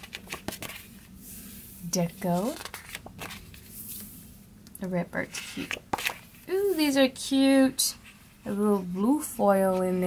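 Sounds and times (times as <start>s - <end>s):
pages rustling and flapping: 0.0s - 1.5s, 2.2s - 4.2s, 5.3s - 6.4s.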